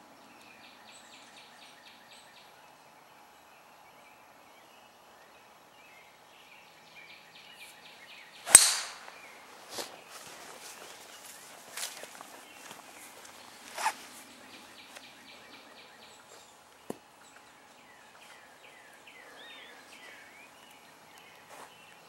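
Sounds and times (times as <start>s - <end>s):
golf driver striking ball: 8.5s - 9.3s.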